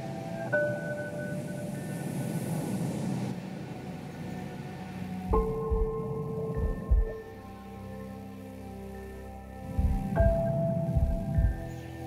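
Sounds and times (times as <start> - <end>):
ambient music with held notes: 0.0 - 12.0
low rumble and hiss: 0.0 - 12.0.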